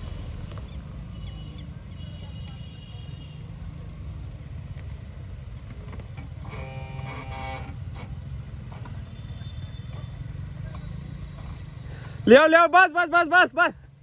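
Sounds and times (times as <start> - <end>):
engine rumbling: 0.0 - 12.2.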